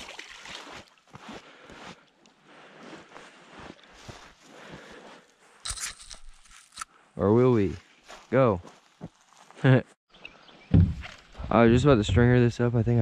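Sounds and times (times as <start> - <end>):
footsteps on gravel and dry leaves: 3.1 - 6.9, 7.7 - 9.6.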